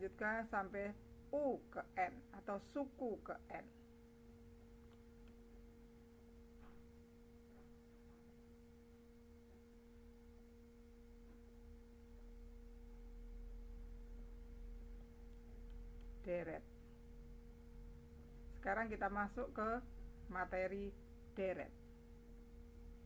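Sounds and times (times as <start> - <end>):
faint two-tone hum: 0.0 - 23.0.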